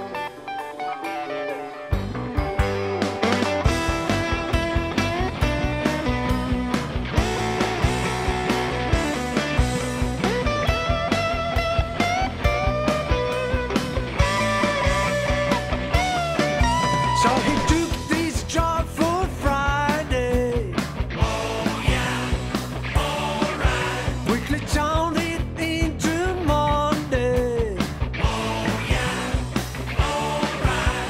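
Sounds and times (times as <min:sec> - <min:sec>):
guitar: 0:00.0 - 0:31.0
rock band playing: 0:00.0 - 0:31.0.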